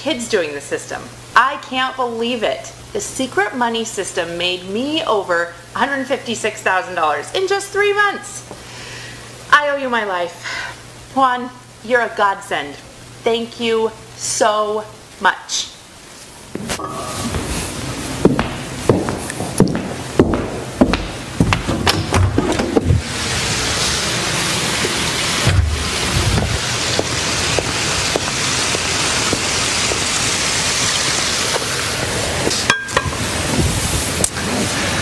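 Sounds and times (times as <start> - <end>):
footsteps on hard floor: 16.5 - 23.0
waterfall running water: 22.7 - 35.0.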